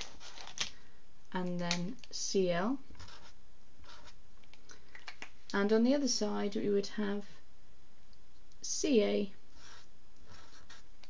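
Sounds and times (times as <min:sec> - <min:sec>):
marker scratching on paper: 0:03.0 - 0:04.2, 0:09.6 - 0:10.9.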